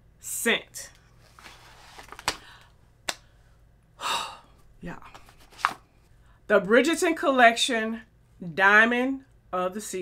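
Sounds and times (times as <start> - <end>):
paper bag rustling: 1.2 - 2.3
breathy gasp: 4.0 - 4.6.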